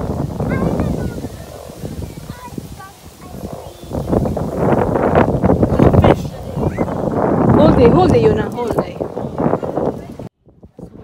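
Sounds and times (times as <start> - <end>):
indistinct voices: 0.0 - 11.0
wind buffeting microphone: 0.0 - 11.0.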